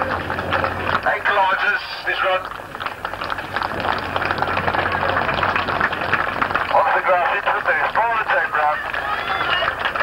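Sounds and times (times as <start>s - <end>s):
spectators applauding: 0.0s - 10.0s.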